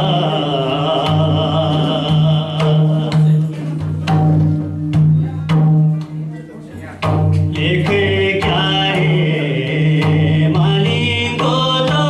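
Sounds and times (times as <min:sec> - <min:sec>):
man singing folk song: 0:00.0 - 0:03.8, 0:07.5 - 0:12.0
hand drum strokes: 0:00.0 - 0:06.4, 0:07.0 - 0:12.0.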